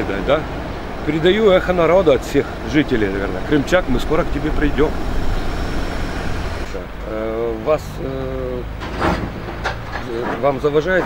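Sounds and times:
man's drawn-out hesitation sounds: 0.0s - 8.8s
street traffic rumble: 0.0s - 11.0s.

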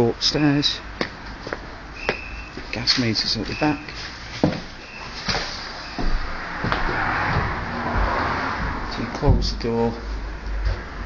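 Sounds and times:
car passing: 4.8s - 11.0s
sharp knocks: 6.0s - 9.6s.

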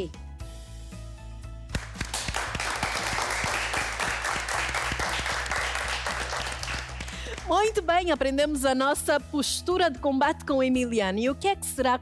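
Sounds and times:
background music: 0.0s - 12.0s
audience applause: 1.8s - 7.5s.

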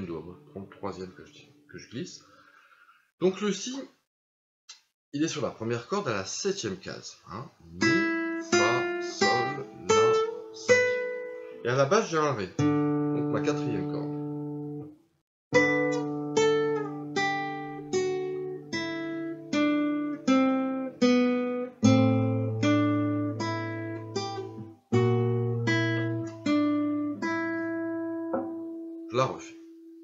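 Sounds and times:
fingerstyle classical guitar: 7.8s - 11.7s, 12.6s - 14.8s, 15.6s - 30.0s.

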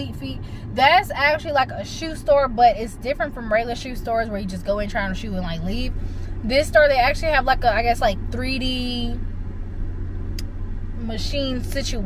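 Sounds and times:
car cabin rumble while driving: 0.0s - 12.0s.

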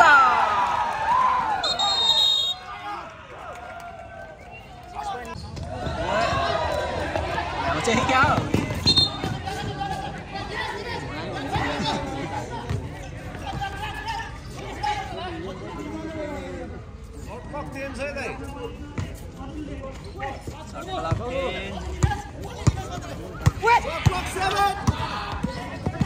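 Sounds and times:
people shouting and talking: 0.0s - 26.0s.

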